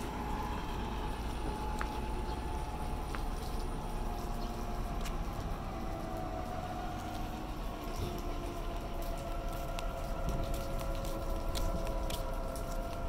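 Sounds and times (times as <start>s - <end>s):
forklift engine running: 0.0s - 13.0s.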